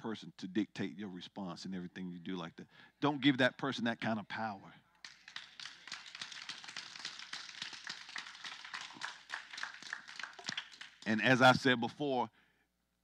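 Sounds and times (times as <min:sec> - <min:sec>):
congregation applauding: 0:05.0 - 0:11.5.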